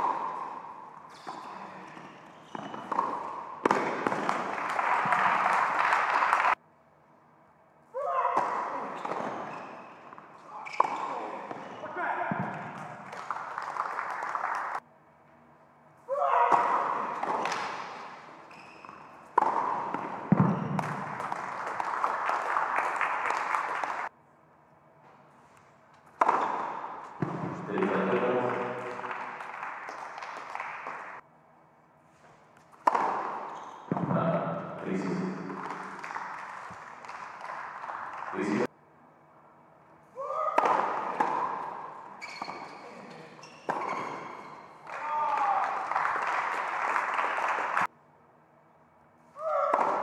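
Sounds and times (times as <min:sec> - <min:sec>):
racket hitting tennis ball: 0:00.0 - 0:05.3, 0:08.3 - 0:13.1, 0:16.4 - 0:22.3, 0:26.0 - 0:28.3, 0:32.6 - 0:34.2, 0:40.5 - 0:42.9, 0:43.6 - 0:44.6, 0:49.4 - 0:50.0
ball bouncing on hard court: 0:00.0 - 0:05.4, 0:08.3 - 0:13.3, 0:16.5 - 0:22.0, 0:26.1 - 0:30.4, 0:32.6 - 0:36.8, 0:40.6 - 0:44.6, 0:49.5 - 0:50.0
voices echoing in a hall: 0:27.5 - 0:29.6.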